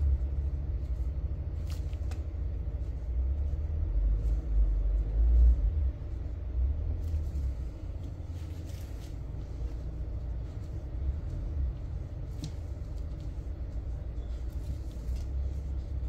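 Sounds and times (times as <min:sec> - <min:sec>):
low rumble: 0:00.0 - 0:16.0.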